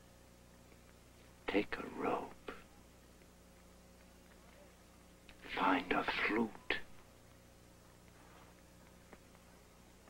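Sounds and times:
man speaking: 1.5 - 2.6, 5.4 - 6.9.

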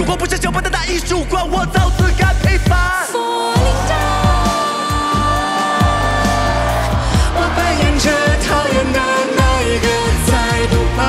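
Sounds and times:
hip-hop backing track: 0.0 - 11.0
woman singing: 2.9 - 11.0.

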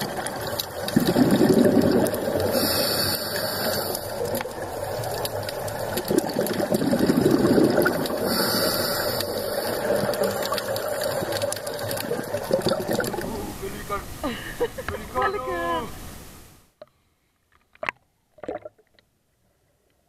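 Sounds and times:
exhaled air bubbling: 0.0 - 13.6, 18.4 - 19.0
regulator inhalation hiss: 2.5 - 4.4, 8.0 - 10.1.

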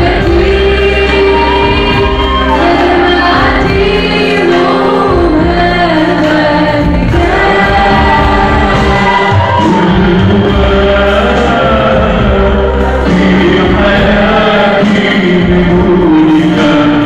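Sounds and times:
group singing a hymn: 0.0 - 17.0.

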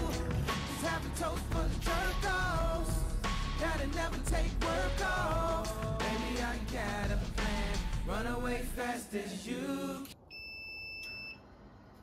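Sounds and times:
high electronic beep: 10.3 - 11.4.

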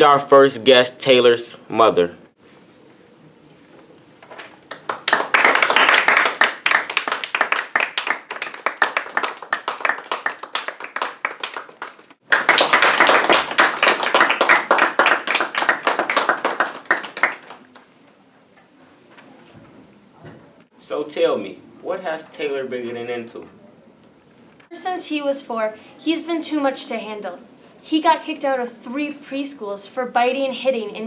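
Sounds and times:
small audience clapping: 4.3 - 17.9.

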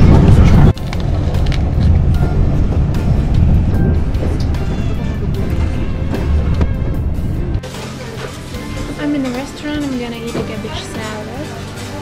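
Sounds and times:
train rumble inside carriage: 0.0 - 11.2
background music: 0.0 - 12.0.

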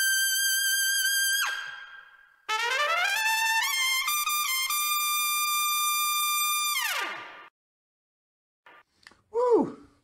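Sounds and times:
trumpet high note: 2.5 - 4.9.

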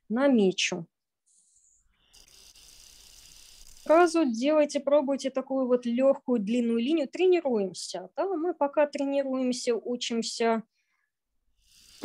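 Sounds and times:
pencil scratching on paper: 2.0 - 4.2.

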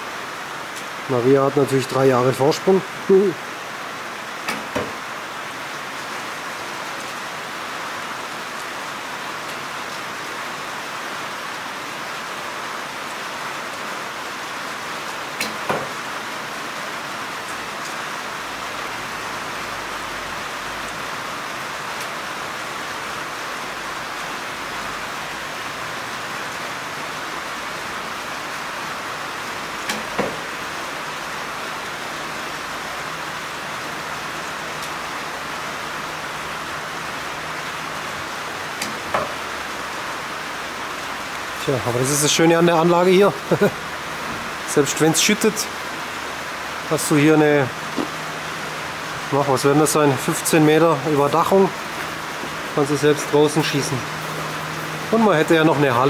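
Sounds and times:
heavy rain: 0.0 - 56.0
sharp knocks: 4.5 - 5.0, 15.4 - 16.0, 29.9 - 30.5.

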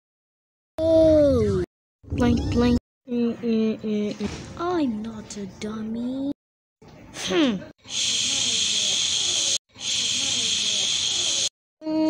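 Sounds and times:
loud hiss: 7.9 - 11.5.

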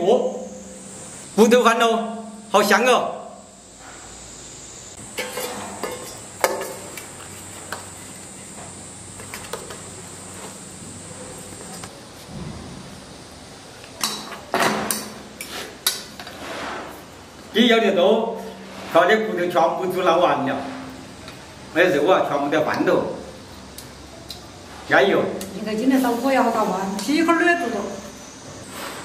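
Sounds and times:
spoon scraping metal pot: 5.1 - 6.9
pot and bowls clattering: 5.2 - 6.9.

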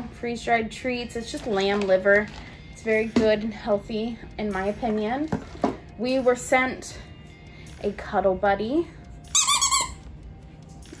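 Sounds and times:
dog toy squeaker squeak: 9.3 - 10.1.

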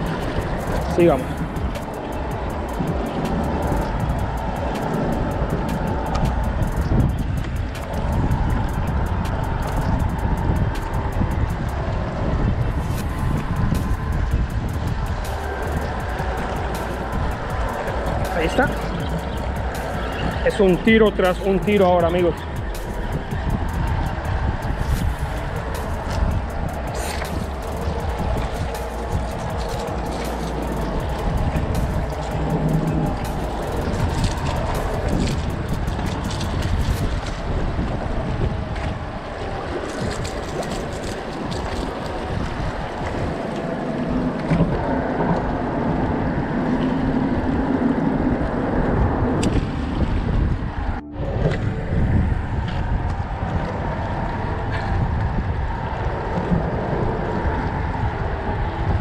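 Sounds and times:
background music: 0.0 - 45.9
water lapping against rocks: 0.0 - 50.7
wind buffeting microphone: 0.0 - 59.0.

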